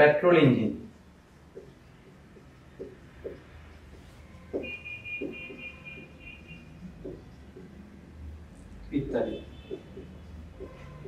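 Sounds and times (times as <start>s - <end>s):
marker writing on whiteboard: 0.0s - 11.0s.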